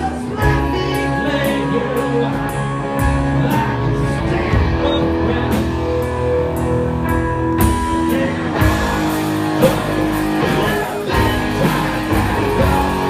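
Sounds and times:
drums: 0.0 - 13.0
electric guitar: 0.0 - 13.0
live rock band playing: 0.0 - 13.0.

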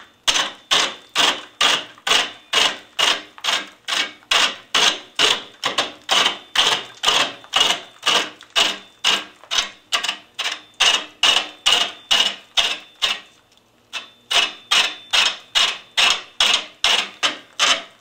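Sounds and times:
lathe tool chopping wood: 0.3 - 9.4.

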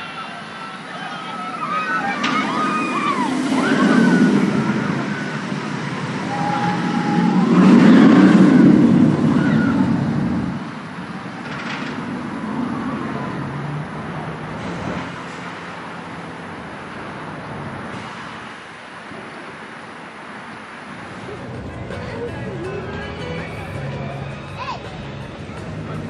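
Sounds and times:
riders screaming: 0.0 - 10.7
roller coaster rushing along track: 0.0 - 26.0.

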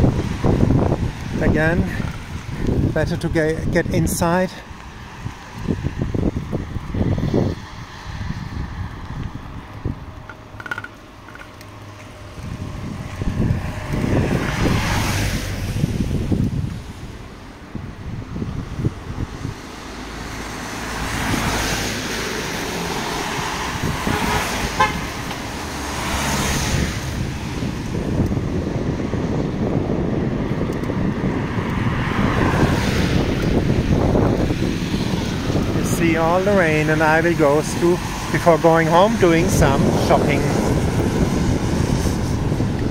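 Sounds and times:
tyres hissing on wet road: 12.8 - 17.0, 19.4 - 28.3, 31.5 - 42.9.

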